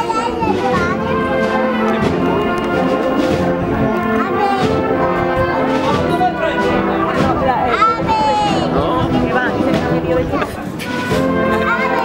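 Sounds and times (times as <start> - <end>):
brass band playing a march: 0.0 - 12.0
crowd chatter: 0.0 - 12.0.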